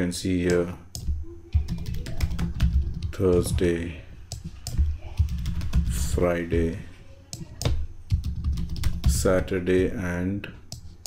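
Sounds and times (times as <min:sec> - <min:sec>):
typing on computer keyboard: 0:00.9 - 0:03.3, 0:04.3 - 0:06.1, 0:07.4 - 0:09.3.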